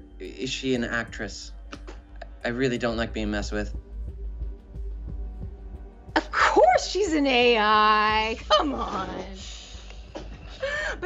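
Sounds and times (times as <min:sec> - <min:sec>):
quiet background music: 0:00.0 - 0:11.0
woman laughing: 0:06.2 - 0:06.8, 0:08.2 - 0:11.0.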